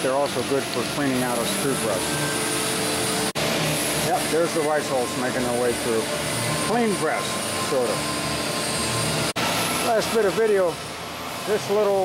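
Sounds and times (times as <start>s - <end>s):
screw press machine humming: 0.0s - 12.0s.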